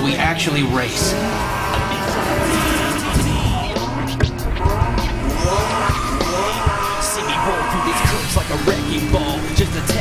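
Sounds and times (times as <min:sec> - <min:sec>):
car engines revving: 0:00.0 - 0:10.0
tyres squealing: 0:00.4 - 0:10.0
music with steady beat: 0:01.8 - 0:10.0.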